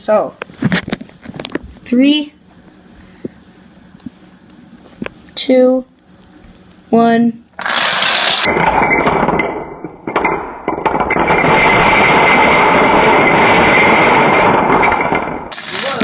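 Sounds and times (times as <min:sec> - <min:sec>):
dominoes clattering on wooden floor: 0:07.6 - 0:08.5, 0:15.5 - 0:16.0.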